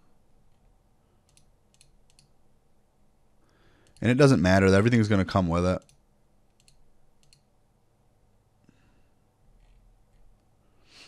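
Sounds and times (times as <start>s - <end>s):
computer mouse clicks: 0.5s - 2.4s, 5.8s - 7.5s.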